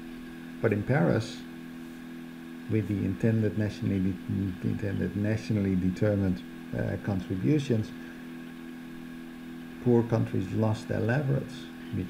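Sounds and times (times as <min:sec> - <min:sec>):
steady low hum: 0:00.0 - 0:12.0
man talking: 0:00.6 - 0:01.5, 0:02.7 - 0:08.0, 0:09.8 - 0:12.0.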